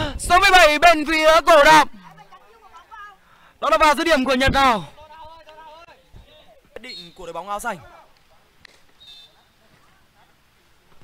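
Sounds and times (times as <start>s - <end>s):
distant players calling out: 0.0s - 10.5s.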